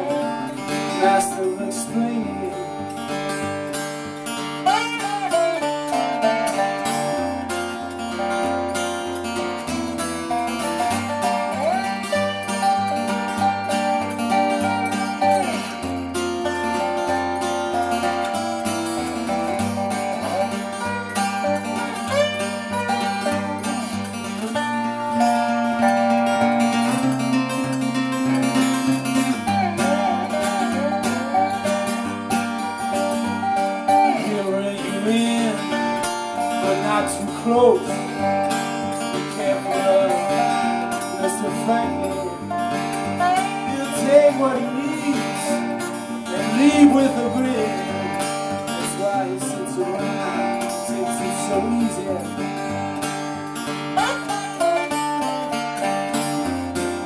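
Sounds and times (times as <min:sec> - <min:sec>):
acoustic guitar picking: 0:00.0 - 0:57.0
lap steel guitar sliding: 0:02.0 - 0:57.0.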